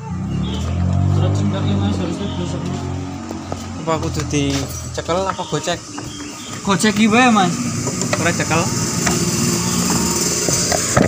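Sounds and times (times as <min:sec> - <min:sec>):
steady mechanical hum: 0:05.0 - 0:11.0.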